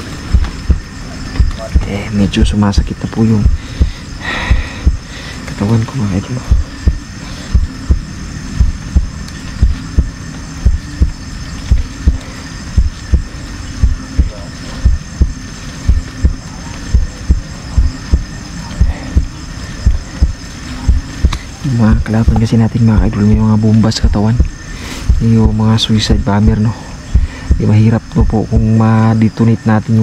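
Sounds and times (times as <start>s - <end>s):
heartbeat thumps: 0.0s - 5.2s, 6.3s - 28.9s
steady high trill: 0.0s - 29.0s.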